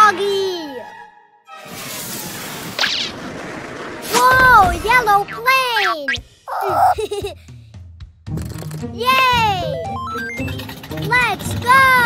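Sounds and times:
cartoon rushing swish: 1.6s - 3.4s, 4.0s - 6.2s.

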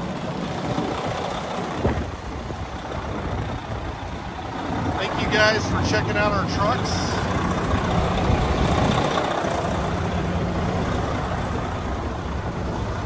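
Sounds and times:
diesel engine idling: 0.0s - 13.0s.

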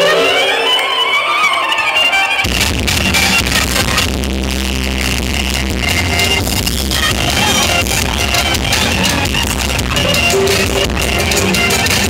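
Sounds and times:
electric guitar: 0.0s - 12.0s
live band music: 0.0s - 12.0s
drums: 2.3s - 12.0s
deep bass note: 2.5s - 11.6s
keyboard: 4.8s - 12.0s.

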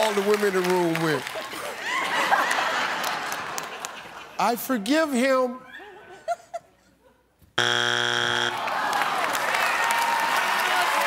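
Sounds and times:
audience applauding: 0.0s - 4.3s, 8.4s - 11.0s
game show buzzer: 7.6s - 9.0s.

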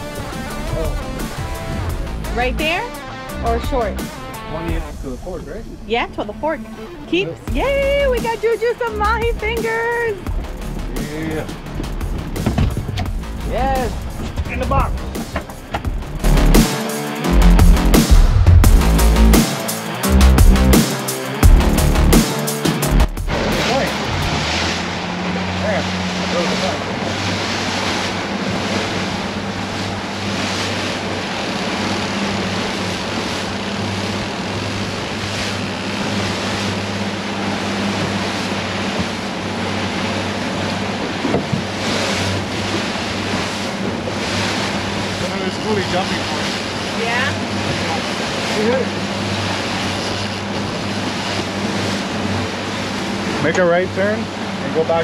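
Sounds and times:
music: 0.0s - 24.7s
boat wake: 0.0s - 55.0s
outboard motor running: 0.0s - 55.0s.

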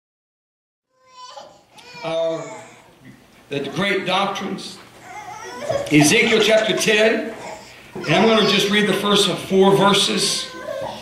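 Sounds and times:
man speaking: 1.9s - 4.9s, 5.9s - 10.6s.

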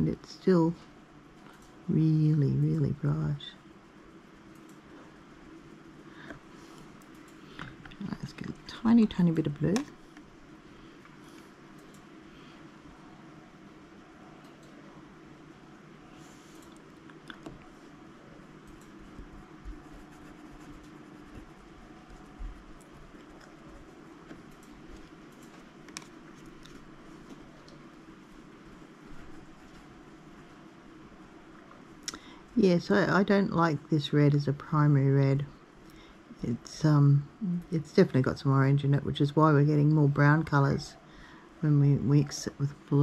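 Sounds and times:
paintbrush tapping and scratching: 19.0s - 23.5s.

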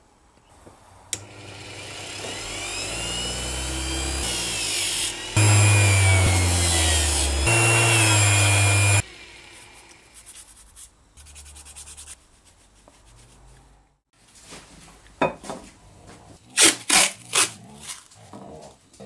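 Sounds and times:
bench grinder motor whining: 1.1s - 10.2s.

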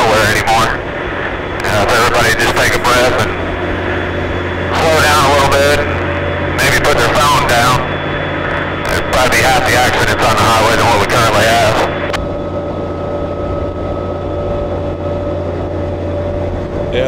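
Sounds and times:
vehicle engine drone: 0.0s - 17.0s.

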